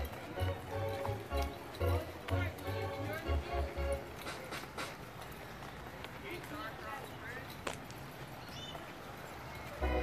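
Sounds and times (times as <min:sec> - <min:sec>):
faint indistinct voices: 0:00.0 - 0:10.0
footsteps on pavement: 0:00.0 - 0:10.0
outdoor background noise: 0:00.0 - 0:10.0.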